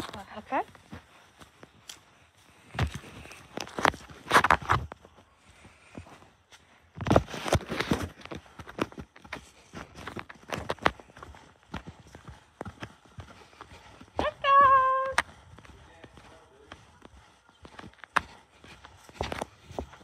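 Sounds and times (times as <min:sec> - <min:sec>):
footsteps on concrete: 0:00.0 - 0:20.0.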